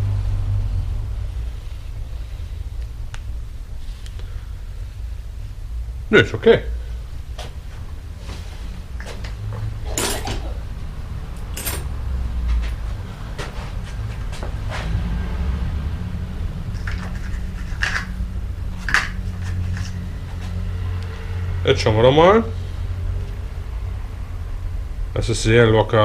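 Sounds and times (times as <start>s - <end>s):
steady low hum: 0.0s - 26.0s
bicycle chain clinking: 11.4s - 11.9s.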